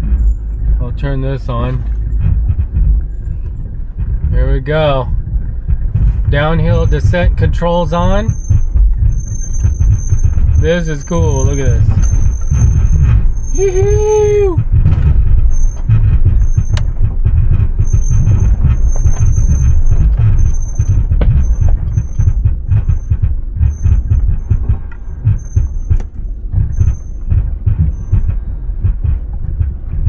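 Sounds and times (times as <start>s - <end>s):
tyres rumbling on dirt track: 0.0s - 30.0s
vehicle knocks and rattles: 0.0s - 30.0s.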